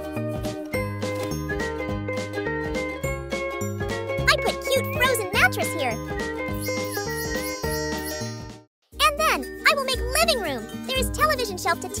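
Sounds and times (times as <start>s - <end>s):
cheerful music with chiming notes: 0.0s - 12.0s
high voice: 4.3s - 6.0s, 9.0s - 12.0s.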